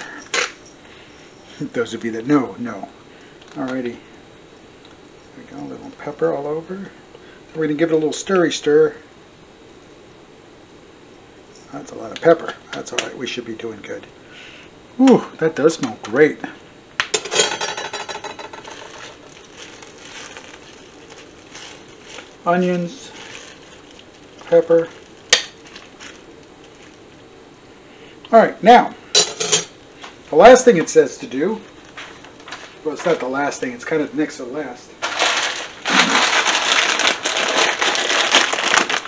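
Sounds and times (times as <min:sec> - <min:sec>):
plastic bag crinkling: 0:17.6 - 0:27.3, 0:31.6 - 0:33.4, 0:35.0 - 0:39.0.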